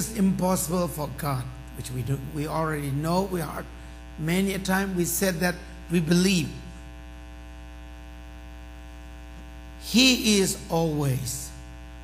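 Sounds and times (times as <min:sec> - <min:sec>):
man speaking: 0:00.0 - 0:06.8, 0:09.8 - 0:11.6
electrical mains hum: 0:00.0 - 0:12.0.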